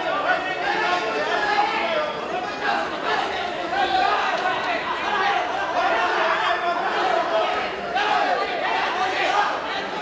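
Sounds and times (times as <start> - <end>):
crowd shouting: 0.0 - 10.0.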